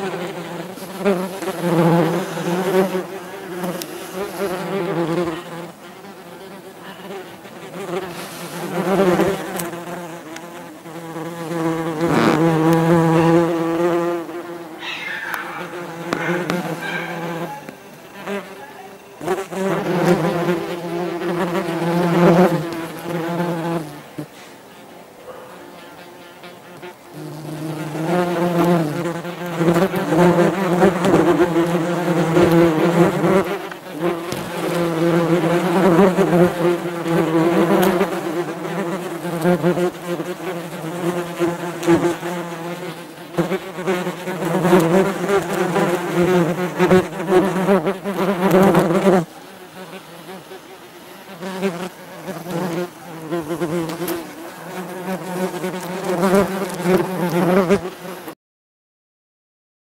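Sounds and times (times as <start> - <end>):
wasps buzzing in flight: 0.0 - 24.9, 25.5 - 58.4.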